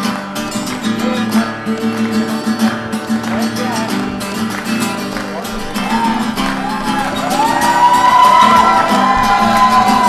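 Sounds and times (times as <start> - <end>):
acoustic guitar strumming: 0.0 - 10.0
crowd noise: 0.0 - 10.0.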